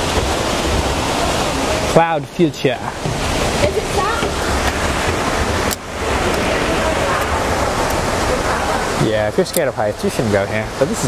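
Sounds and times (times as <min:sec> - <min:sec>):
falling water rushing: 0:00.0 - 0:11.0.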